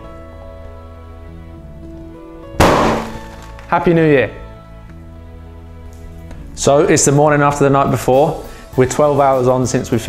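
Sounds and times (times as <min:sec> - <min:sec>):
background music: 0:00.0 - 0:10.0
balloon bursting bang: 0:02.6 - 0:03.5.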